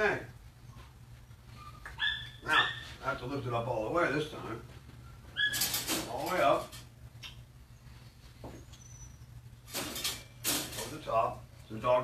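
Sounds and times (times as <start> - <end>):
wire dog crate door rattling: 5.5 - 6.9, 9.7 - 11.0.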